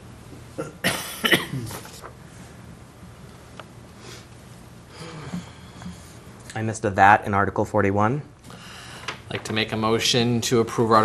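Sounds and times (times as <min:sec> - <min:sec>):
person coughing: 0:00.6 - 0:01.9.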